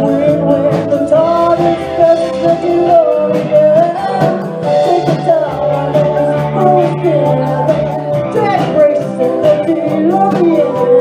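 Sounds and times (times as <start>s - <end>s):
drum kit with cymbal beat: 0.0s - 11.0s
electric guitar: 0.0s - 11.0s
woman singing: 0.0s - 11.0s.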